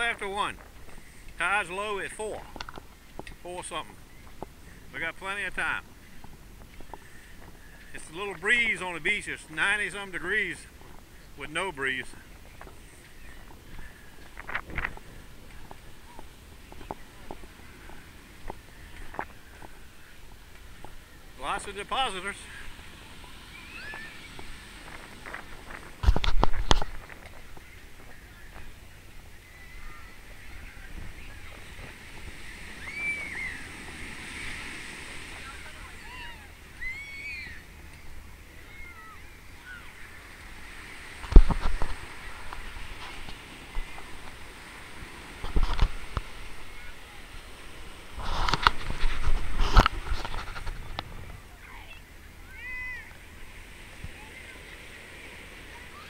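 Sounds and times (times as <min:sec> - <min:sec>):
waves breaking: 0:00.0 - 0:56.0
distant shouts and voices: 0:21.1 - 0:25.1, 0:27.6 - 0:41.0, 0:50.4 - 0:56.0.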